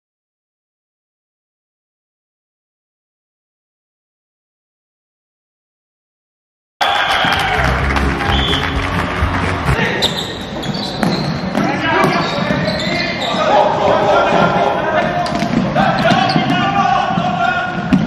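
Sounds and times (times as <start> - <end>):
players calling out: 6.8 - 18.0.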